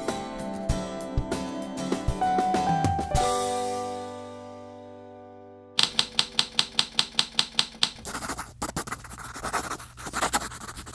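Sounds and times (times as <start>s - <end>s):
typewriter key clicks: 5.8s - 8.0s
pen scratching on paper: 7.7s - 10.9s.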